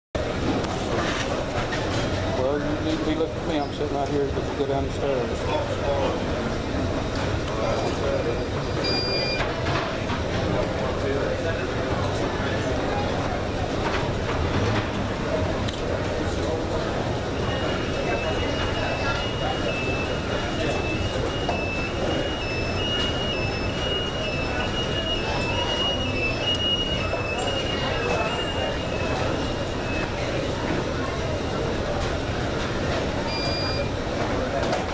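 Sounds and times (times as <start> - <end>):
many people talking: 0.2 - 34.9
rumble of people and luggage: 0.2 - 34.9
high-pitched two-tone electronic tone: 8.8 - 9.4, 17.4 - 30.2, 33.3 - 33.9
short high electronic beep: 8.8 - 9.4, 33.3 - 33.9.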